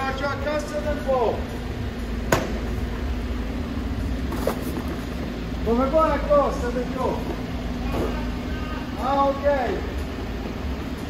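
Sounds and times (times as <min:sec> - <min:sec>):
diesel truck engine running: 0:00.0 - 0:11.0.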